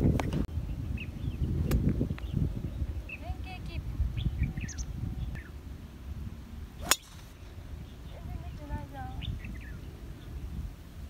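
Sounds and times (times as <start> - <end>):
low outdoor rumble: 0.0 - 11.0
faint bird chirp: 0.6 - 5.6, 6.8 - 10.7
golf club swing whoosh: 6.8 - 7.6.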